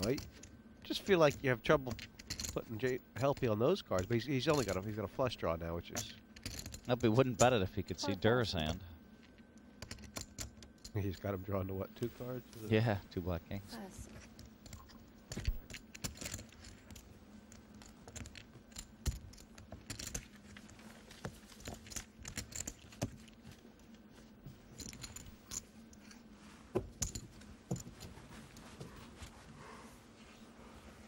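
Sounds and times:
faint steady hum: 0.0 - 31.0.

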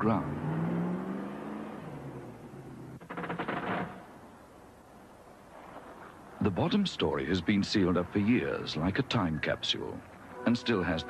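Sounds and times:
car passing: 0.0 - 4.3
short rapid rattling: 3.0 - 4.0.

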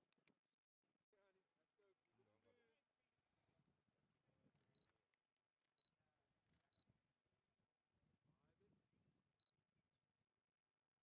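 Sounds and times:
faint high beeps: 5.8 - 6.0, 9.4 - 9.6.

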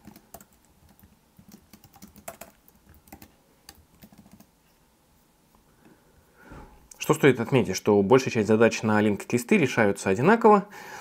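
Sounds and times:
computer keyboard typing: 0.0 - 4.5.

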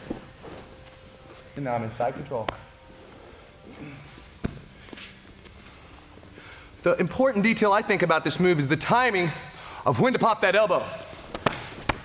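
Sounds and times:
bare feet shuffling on mat: 0.0 - 6.2.

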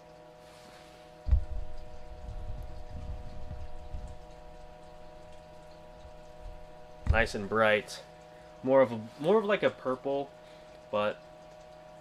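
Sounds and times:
faint electrical whine: 0.0 - 12.0
low rumbling and bumping: 1.2 - 4.7, 6.0 - 7.6
handling thump: 1.3 - 1.7, 7.0 - 7.4.

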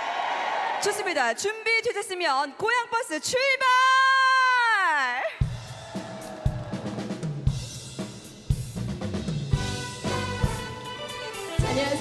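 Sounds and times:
drum kit kick and snare: 5.4 - 10.8
bass: 7.5 - 12.0.

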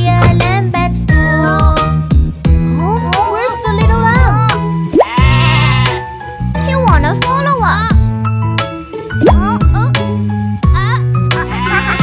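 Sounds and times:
children's background music: 0.0 - 12.0
cartoon lamb bleating: 4.9 - 6.0, 11.3 - 12.0.

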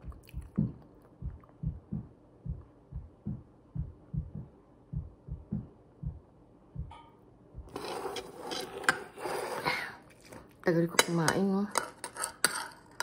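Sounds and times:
person chewing food: 0.0 - 2.6.

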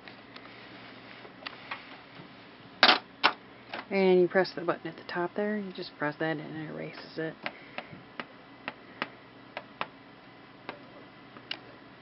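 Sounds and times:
stylus tapping plastic screen: 7.0 - 10.0.

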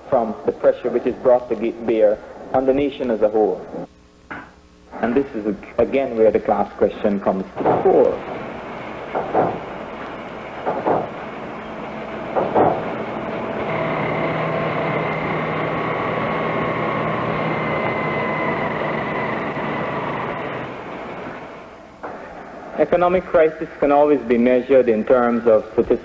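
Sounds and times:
machine noise with held tones: 0.0 - 26.0.

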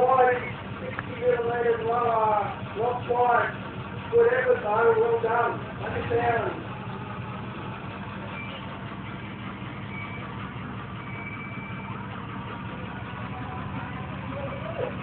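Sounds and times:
truck engine at low revs: 0.0 - 15.0.

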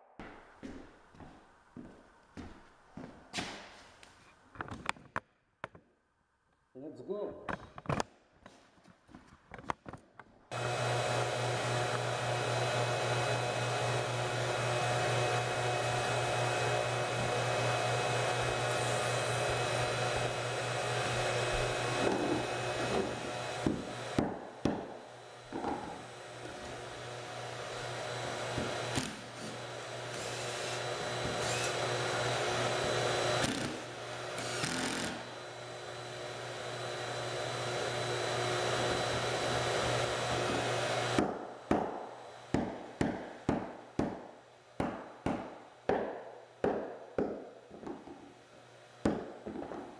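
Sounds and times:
electric motor running: 10.5 - 24.2, 24.8 - 41.2.

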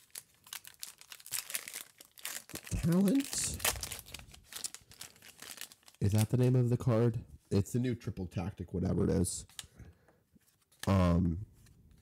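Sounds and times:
foil wrapper crinkling: 0.0 - 6.6.

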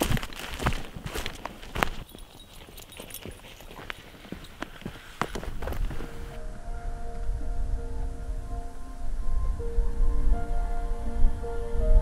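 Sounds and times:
footsteps on grass and earth: 0.0 - 6.4.

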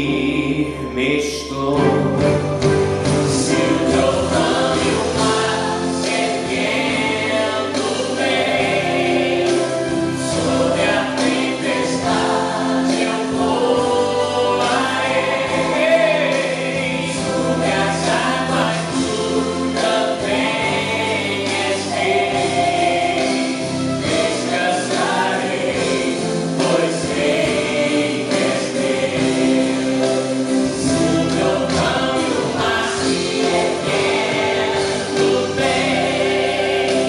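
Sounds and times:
man singing gospel song: 0.0 - 2.4
recorded accompaniment: 0.0 - 37.0.

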